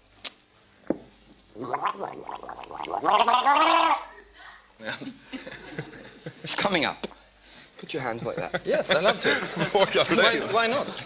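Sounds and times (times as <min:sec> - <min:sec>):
man's throat gurgling: 0:01.6 - 0:04.0.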